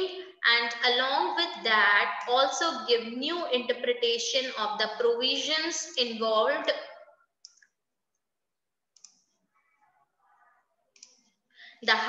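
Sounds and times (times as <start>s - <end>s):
woman speaking: 0.0s - 6.8s.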